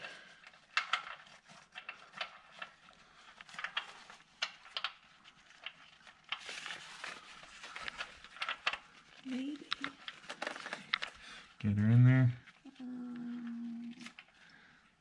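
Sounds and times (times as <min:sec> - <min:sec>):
paper towel rustling: 0:00.0 - 0:11.4.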